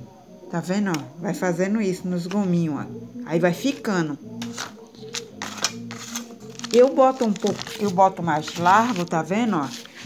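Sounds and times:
ruler scraping wrapping paper: 0:04.4 - 0:10.0.

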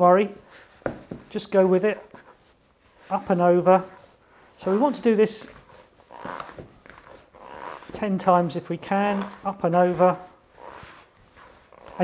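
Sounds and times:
wet dough squelching: 0:02.6 - 0:12.0.

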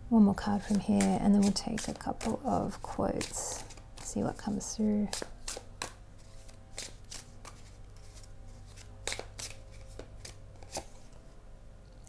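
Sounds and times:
faint steady hum: 0:00.0 - 0:12.0
cards shuffling: 0:00.6 - 0:11.2
sharp card snaps: 0:09.0 - 0:10.9.

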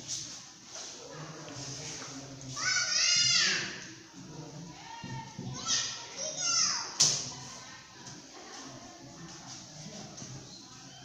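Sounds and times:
children calling out: 0:02.6 - 0:03.9, 0:04.9 - 0:07.0.

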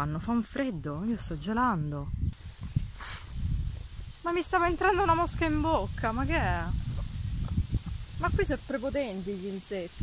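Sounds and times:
wind rumble: 0:00.0 - 0:10.0
microphone handling noise: 0:02.2 - 0:08.7.

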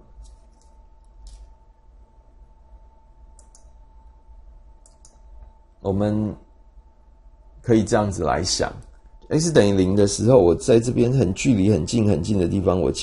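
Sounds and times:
steady low hum: 0:00.0 - 0:13.0
soft high-pitched clicks: 0:00.2 - 0:01.6, 0:03.3 - 0:03.8, 0:04.8 - 0:05.6.

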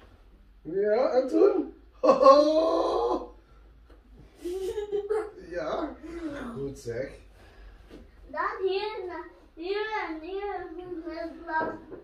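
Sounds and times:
wailing vocal cry: 0:02.0 - 0:03.4.

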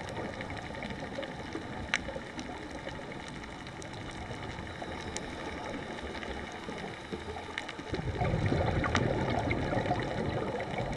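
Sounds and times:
faint clicks: 0:00.0 - 0:10.9
muffled underwater rush: 0:00.0 - 0:10.9.

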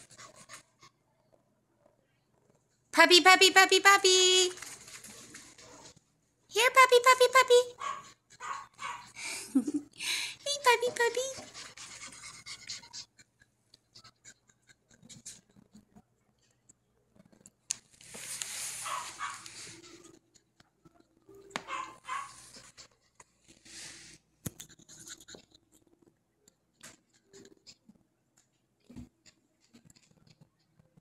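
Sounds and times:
puppy barking: 0:07.7 - 0:09.2, 0:18.8 - 0:19.5, 0:21.6 - 0:22.5.

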